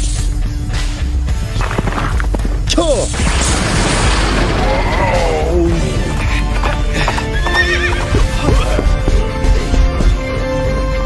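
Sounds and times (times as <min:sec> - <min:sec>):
background music: 0:00.0 - 0:11.0
galloping hoofbeats: 0:01.4 - 0:02.9, 0:05.6 - 0:09.7
horse whinny: 0:07.0 - 0:09.0.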